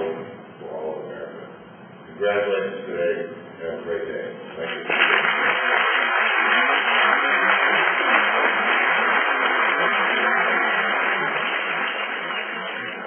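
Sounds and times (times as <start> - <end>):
large audience applauding: 4.6 - 13.0.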